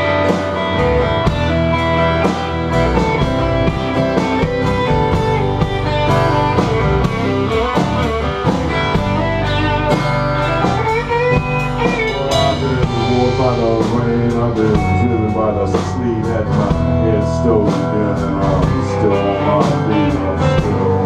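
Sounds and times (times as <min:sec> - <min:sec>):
acoustic guitar: 0:00.0 - 0:21.0
bass guitar: 0:00.0 - 0:21.0
drum kit: 0:00.0 - 0:21.0
electric guitar lead: 0:00.0 - 0:21.0.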